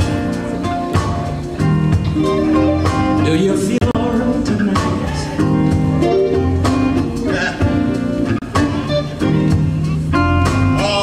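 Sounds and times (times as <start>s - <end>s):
drum kit: 0.0s - 11.0s
electric guitars: 0.0s - 11.0s.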